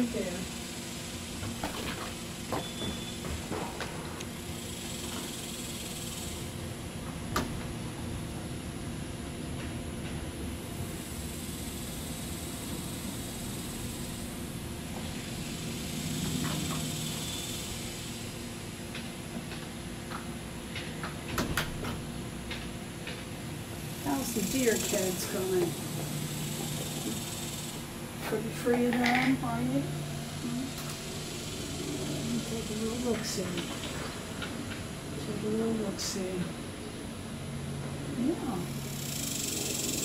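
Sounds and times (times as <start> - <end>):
steady background noise: 0.0 - 40.0
low hum: 6.4 - 40.0.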